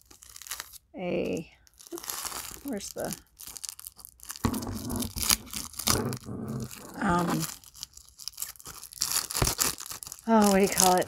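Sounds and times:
packaging rustling: 0.0s - 0.8s, 1.6s - 11.0s.

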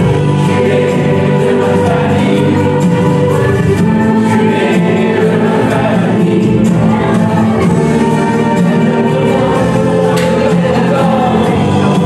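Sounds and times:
accompanying music: 0.0s - 12.0s
group of people singing: 0.0s - 12.0s.

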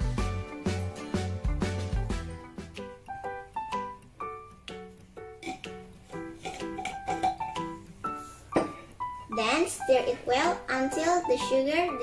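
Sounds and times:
light piano melody: 0.0s - 12.0s.

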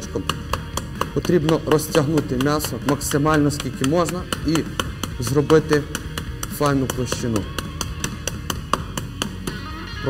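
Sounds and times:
steady ticking beat: 0.0s - 9.6s.

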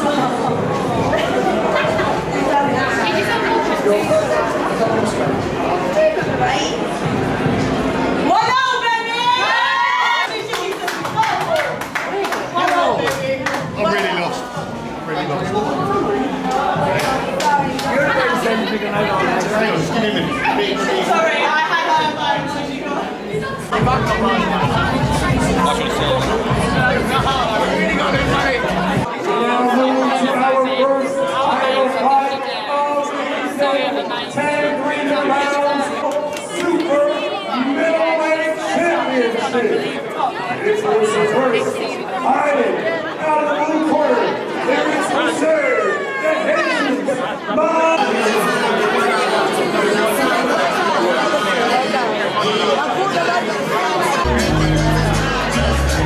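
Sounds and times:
overlapping chatter of people: 0.0s - 56.0s.

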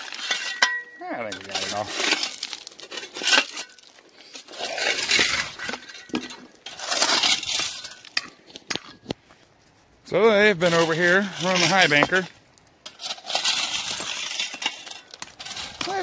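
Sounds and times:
stones clinking: 0.0s - 9.2s.

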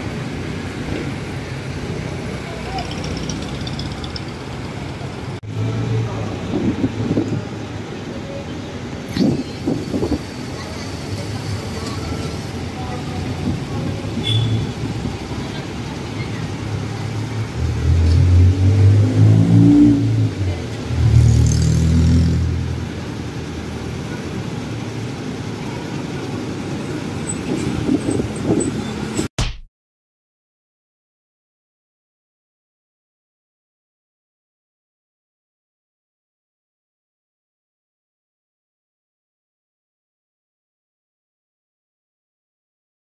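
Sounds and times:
traffic hum: 0.0s - 29.3s.

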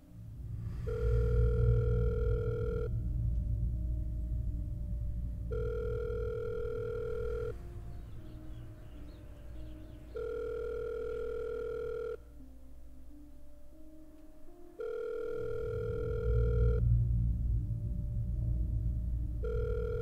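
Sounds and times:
low drone: 0.0s - 20.0s
telephone ringback tone: 0.9s - 2.9s, 5.5s - 7.6s, 10.1s - 12.2s, 14.8s - 16.8s, 19.4s - 20.0s.

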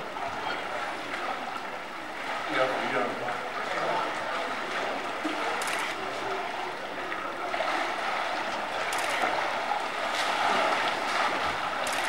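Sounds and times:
faint splashes: 0.0s - 12.0s
water lapping and sloshing: 0.0s - 12.0s.

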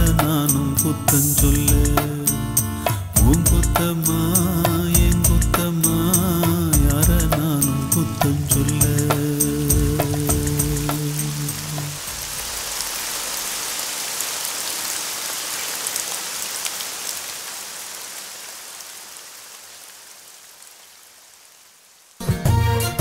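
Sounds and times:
song: 0.0s - 12.0s, 22.2s - 23.0s
rain hissing: 0.0s - 22.3s.

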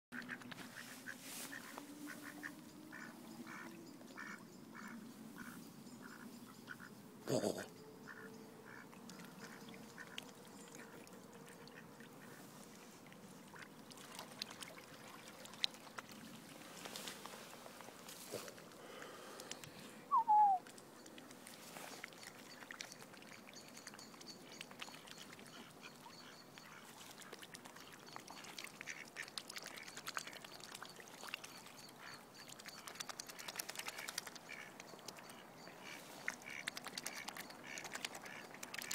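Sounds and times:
swan bills clicking and nibbling: 0.2s - 2.2s, 8.1s - 19.8s, 20.6s - 38.9s
quacking waterfowl calls: 0.2s - 10.2s, 25.4s - 30.0s, 33.3s - 38.9s.

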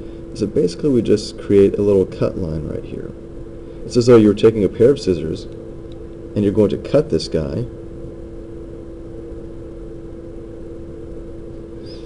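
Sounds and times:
low background hum with constant tone: 0.0s - 12.0s.

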